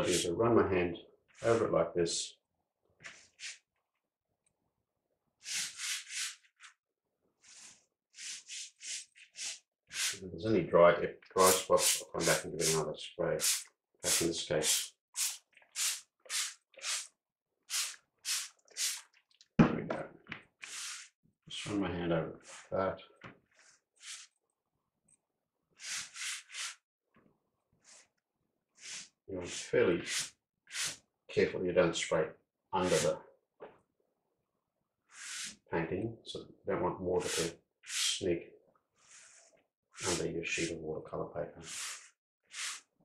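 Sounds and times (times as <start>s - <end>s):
spray bottle squirts: 5.4s - 6.7s, 7.5s - 10.2s, 13.4s - 19.2s, 20.6s - 21.1s, 24.0s - 24.3s, 25.8s - 26.8s, 30.1s - 31.0s, 35.1s - 35.6s, 41.6s - 42.9s
hands swishing over damp paper: 7.4s - 10.2s, 17.7s - 19.1s, 23.6s - 24.3s, 25.8s - 26.8s, 32.8s - 33.1s, 39.0s - 40.7s, 41.6s - 42.9s.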